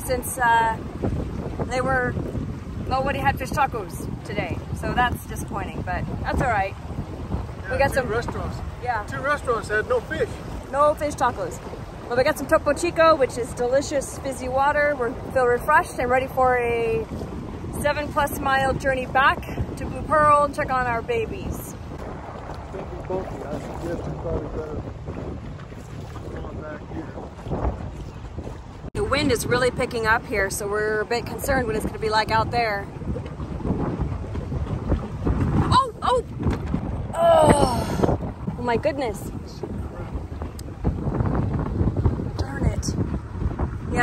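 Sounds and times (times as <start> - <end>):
outboard motor running: 0.0 - 44.0
water rushing: 0.0 - 44.0
wind buffeting microphone: 0.0 - 44.0.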